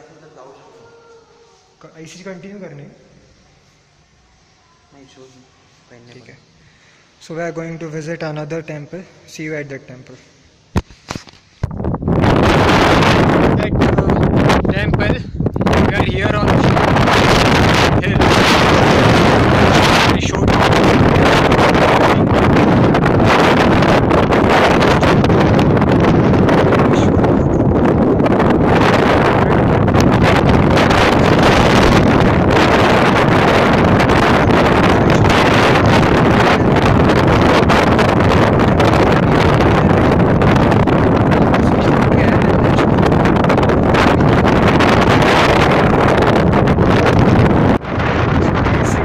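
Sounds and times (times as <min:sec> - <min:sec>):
wind blowing across microphone: 0:10.7 - 0:49.0.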